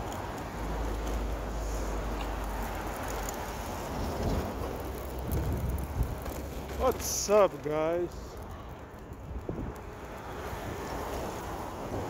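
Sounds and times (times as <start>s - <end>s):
street traffic: 0.0s - 12.0s
wind on microphone: 4.0s - 6.4s, 8.4s - 12.0s.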